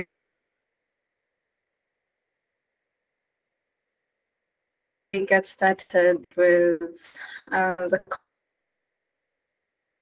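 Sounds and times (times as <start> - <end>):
faint steady hum: 0.0 - 10.0
voice on a video call: 5.2 - 8.2.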